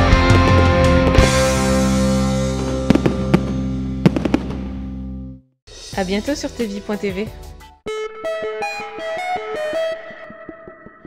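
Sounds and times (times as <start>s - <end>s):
rock music chord: 0.0s - 5.4s
fireworks cracking: 2.6s - 4.9s.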